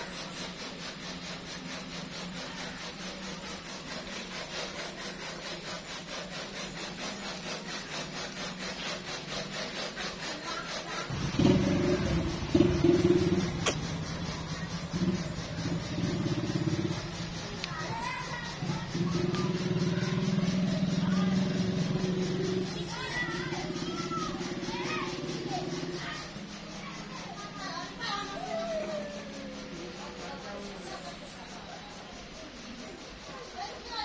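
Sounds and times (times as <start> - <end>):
engine running at low speed: 0.0 - 34.0
rhythmic rasping: 0.0 - 34.0
sharp click: 13.6 - 13.9.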